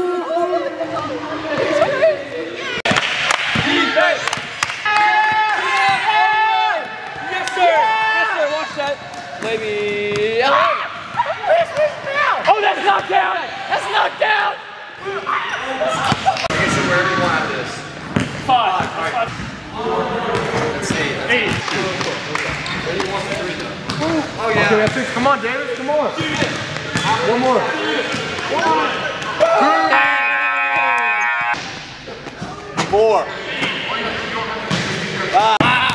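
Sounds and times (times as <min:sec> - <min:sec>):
boys yelling and cheering: 0:04.8 - 0:09.0, 0:10.4 - 0:17.1, 0:27.1 - 0:31.6, 0:35.3 - 0:35.9.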